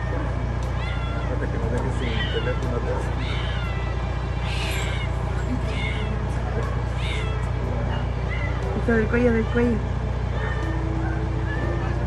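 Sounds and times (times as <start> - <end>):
cat meowing: 0.0 - 12.0
steady low hum: 0.0 - 12.0.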